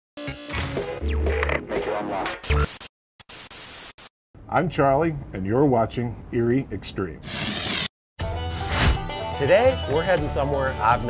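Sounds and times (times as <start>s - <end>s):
static hiss: 2.5s - 4.1s.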